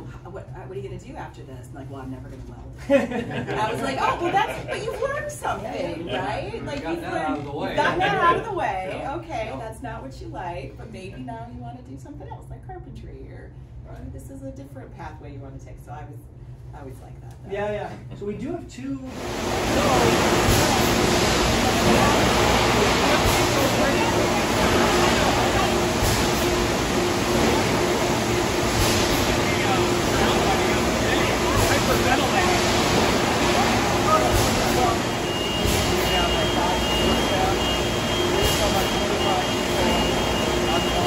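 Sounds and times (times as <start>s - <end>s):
factory machinery running: 19.1s - 41.0s
indistinct voices talking: 19.4s - 41.0s.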